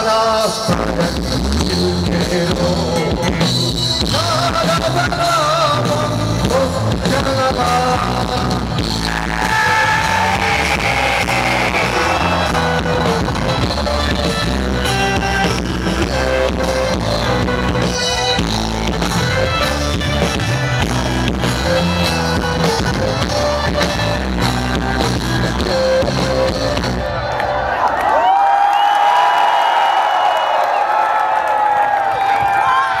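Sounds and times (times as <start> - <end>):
bass guitar: 0.0 - 27.4
electric guitar: 0.0 - 27.8
drum kit: 0.7 - 27.0.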